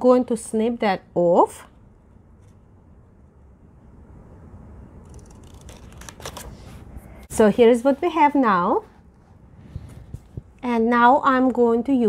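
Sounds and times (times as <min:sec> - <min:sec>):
scissors snipping tape: 0:05.0 - 0:06.5
paper rustling: 0:05.0 - 0:08.2.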